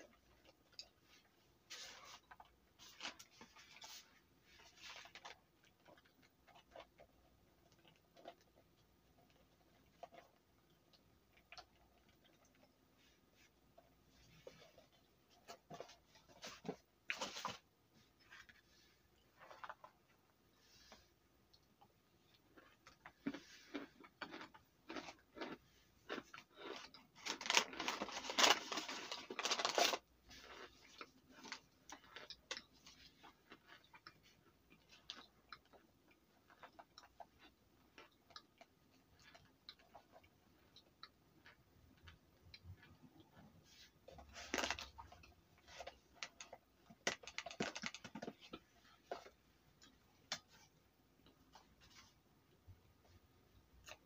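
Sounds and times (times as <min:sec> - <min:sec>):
cornstarch being chewed and crunched: 0:00.0 - 0:13.5, 0:21.5 - 0:51.8.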